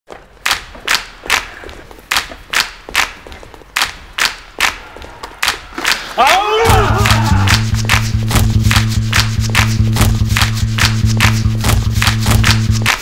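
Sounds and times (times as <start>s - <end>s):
rhythmic hand claps: 0.4s - 13.0s.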